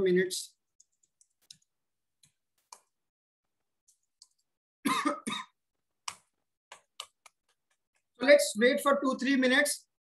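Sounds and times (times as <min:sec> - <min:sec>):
man coughing: 0:04.8 - 0:05.6.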